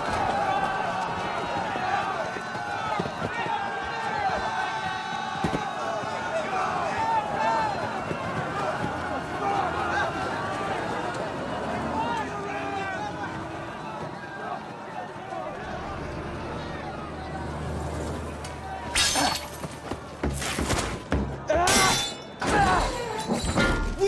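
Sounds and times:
men shouting: 0.0s - 17.7s.

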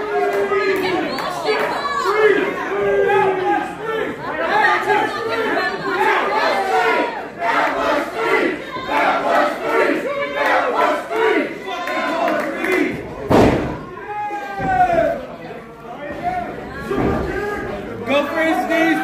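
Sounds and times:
crowd shouting and yelling: 0.0s - 19.0s.

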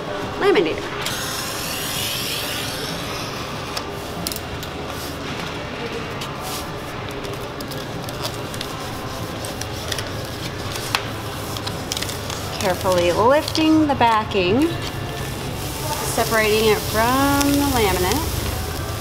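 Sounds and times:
film and paper rustling: 4.9s - 19.0s.

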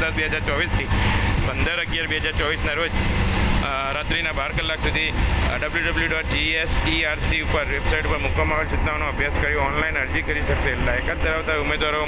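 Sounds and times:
vehicle rumble: 0.0s - 12.0s.

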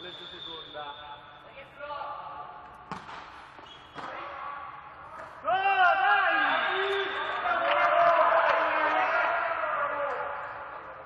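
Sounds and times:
volleyball being struck: 2.8s - 4.3s.

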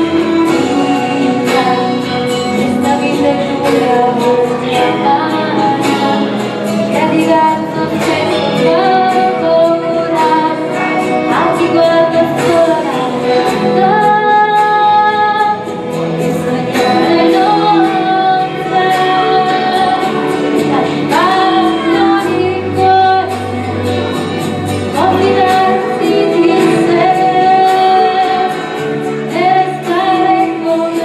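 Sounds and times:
backing music: 0.0s - 31.0s
woman singing: 0.0s - 31.0s.

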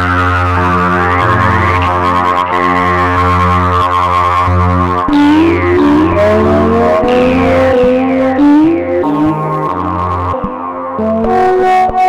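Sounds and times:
low electronic drone: 0.0s - 11.5s
high tones sweeping down: 0.3s - 3.2s, 5.1s - 10.0s
pitched tones sliding upward: 0.4s - 2.9s, 5.1s - 9.8s.

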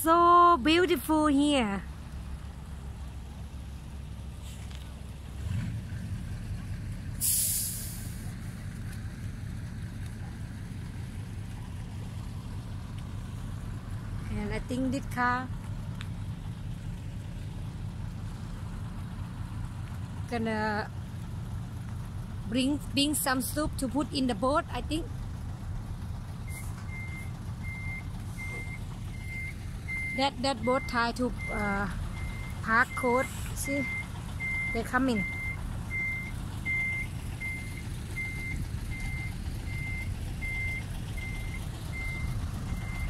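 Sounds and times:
truck engine rumbling: 0.0s - 43.0s
air brakes hissing: 7.1s - 8.4s, 26.5s - 26.9s, 33.2s - 33.6s
truck reversing alarm beeping: 26.4s - 43.0s.

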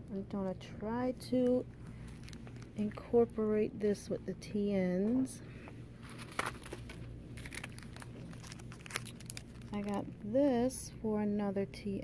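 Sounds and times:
low steady hum: 0.0s - 12.0s
plastic packaging crinkling: 1.8s - 3.1s, 6.0s - 10.2s.

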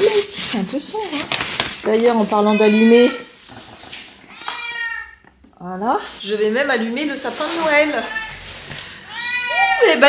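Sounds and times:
cat meowing: 2.5s - 3.3s, 4.2s - 5.3s, 7.8s - 10.0s.

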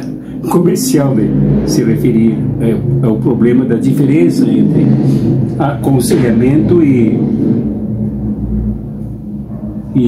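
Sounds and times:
deep rumble: 0.0s - 10.0s
low background music: 0.0s - 10.0s.

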